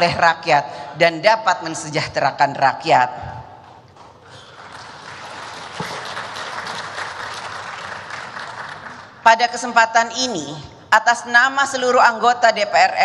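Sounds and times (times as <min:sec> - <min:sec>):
audience applauding: 0:04.3 - 0:09.2.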